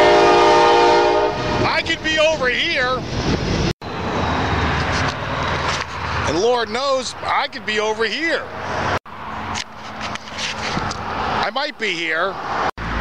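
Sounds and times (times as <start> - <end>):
train horn chord: 0.0 - 1.6.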